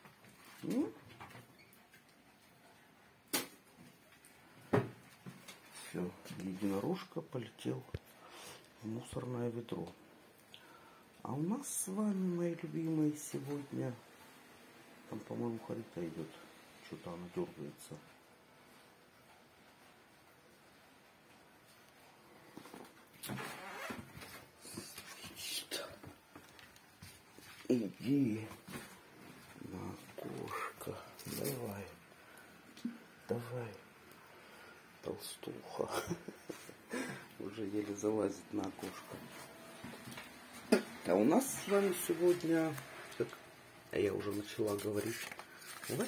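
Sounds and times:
rustling and handling noise: 0.0s - 9.0s, 18.0s - 34.9s, 35.7s - 46.0s.

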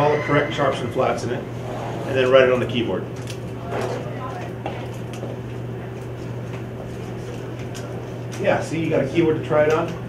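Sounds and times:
low room hum: 0.0s - 10.0s
faint classroom voices: 3.5s - 8.3s.

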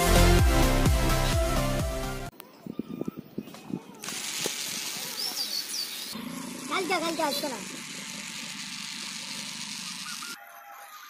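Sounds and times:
toy motor whirring: 3.9s - 11.0s.

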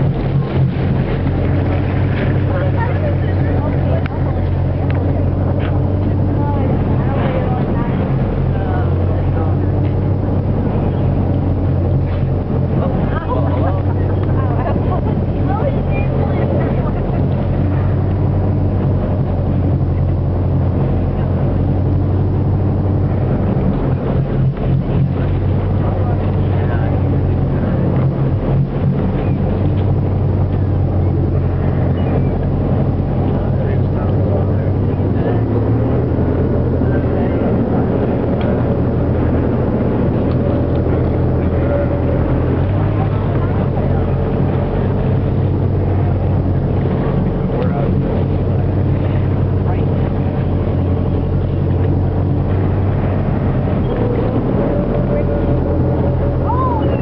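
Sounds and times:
boat engine humming: 0.0s - 57.0s
water washing: 0.0s - 57.0s
wind: 0.0s - 57.0s.

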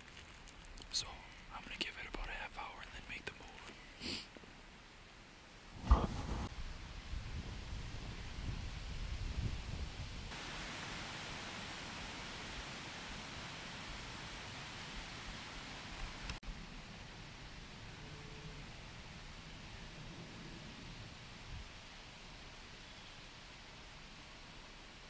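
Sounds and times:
steady hiss: 0.0s - 25.0s
man whispering: 0.8s - 3.9s
low rumbling noise: 5.5s - 22.0s
loud thump: 5.8s - 6.5s.

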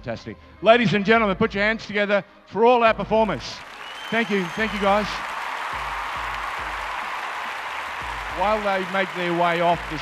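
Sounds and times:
music playing: 3.0s - 10.0s
audience applauding: 3.6s - 10.0s.

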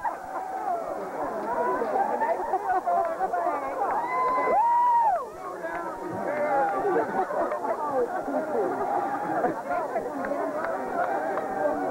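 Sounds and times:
crowd talking and shouting: 0.0s - 11.9s
person whooping: 4.0s - 5.2s.

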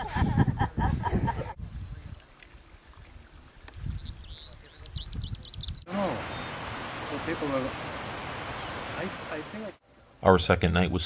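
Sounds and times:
small bird singing: 3.8s - 7.3s, 8.6s - 9.8s.

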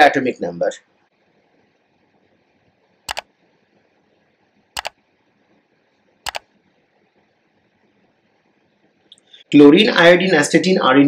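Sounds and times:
mouse click sound effects: 3.1s - 3.3s, 4.8s - 5.0s.

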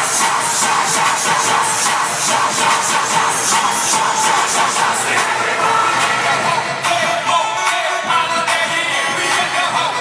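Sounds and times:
loud electronic dance music: 0.0s - 10.0s.

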